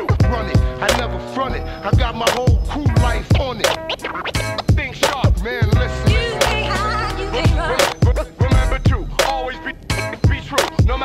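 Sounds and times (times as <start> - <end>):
hip-hop beat: 0.0 - 11.0
person rapping: 0.0 - 11.0
turntable scratching: 0.0 - 11.0.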